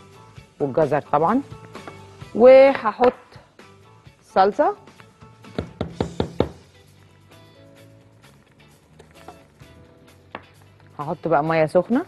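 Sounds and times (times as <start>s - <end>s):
soft background music: 0.0s - 12.0s
spatula knocking on pot: 5.5s - 6.7s.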